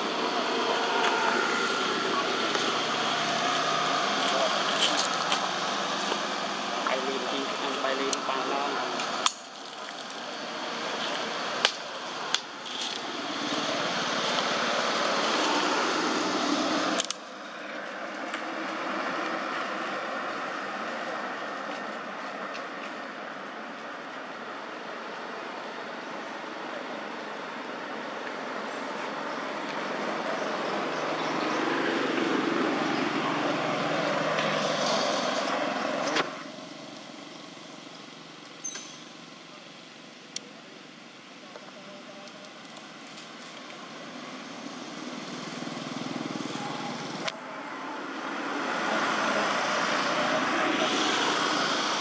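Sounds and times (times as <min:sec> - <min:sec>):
road traffic passing: 0:00.0 - 0:52.0.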